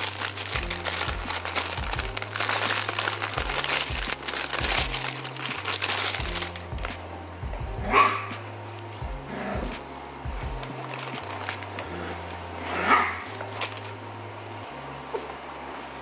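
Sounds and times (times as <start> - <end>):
plastic bag crinkling: 0.0 - 7.1, 9.6 - 15.1
background music with bass line: 0.0 - 16.0.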